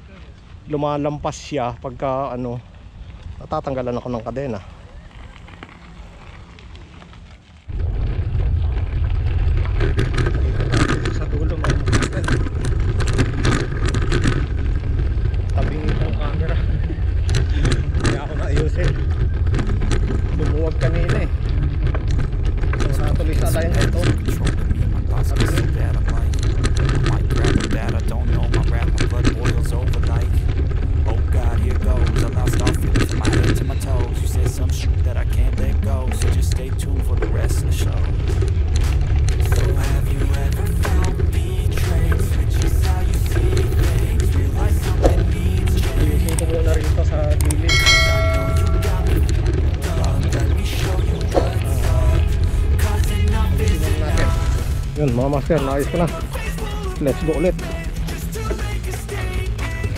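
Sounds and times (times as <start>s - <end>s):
wind rumble on microphone: 0.0s - 55.2s
tyres crackling over gravel: 0.0s - 59.9s.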